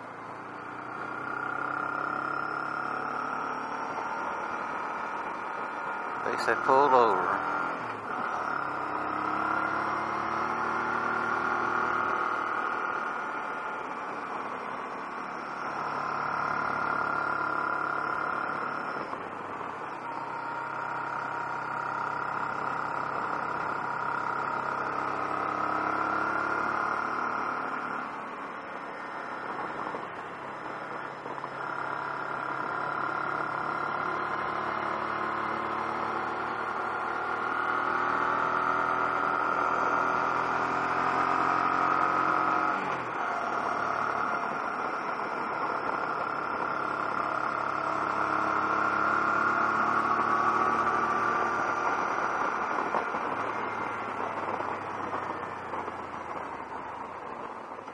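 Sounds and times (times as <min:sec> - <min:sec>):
motorcycle engine running: 0:00.0 - 0:57.9.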